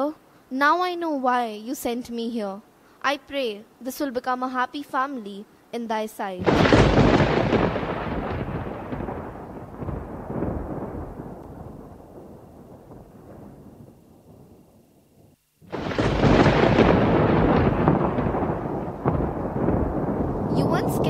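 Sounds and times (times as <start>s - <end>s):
loud thunderclap: 6.4s - 14.6s, 15.7s - 21.0s
thunder rumbling: 6.4s - 21.0s.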